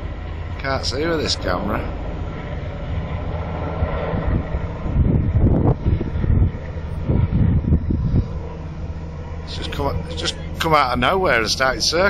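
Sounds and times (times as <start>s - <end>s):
helicopter rotor drone: 0.0s - 12.0s
wind buffeting microphone: 0.0s - 12.0s.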